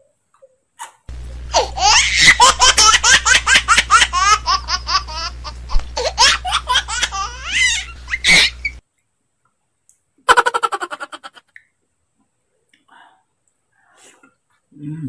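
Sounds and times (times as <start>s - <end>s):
steady low hum: 1.1s - 8.8s
high-pitched rapid laughter: 1.5s - 8.8s.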